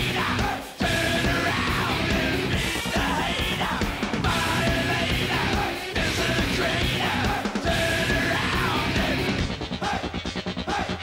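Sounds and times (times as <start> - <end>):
distorted electric guitars: 0.0 - 11.0
drums: 0.0 - 11.0
heavy metal song: 0.0 - 11.0.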